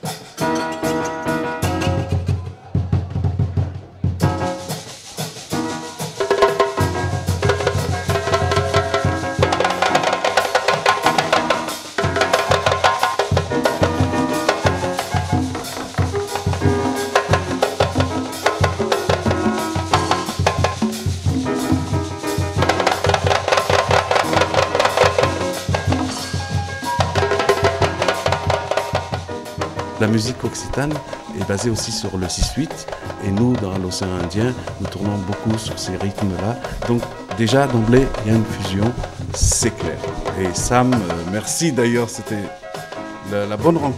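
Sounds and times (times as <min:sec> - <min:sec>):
djembe and drum kit beat: 0:00.0 - 0:43.9
live band playing fusion music: 0:00.0 - 0:43.9.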